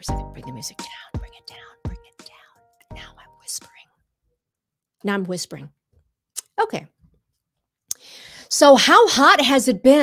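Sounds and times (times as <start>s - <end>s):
soft background music: 0.0s - 3.9s
woman whispering: 0.6s - 4.0s.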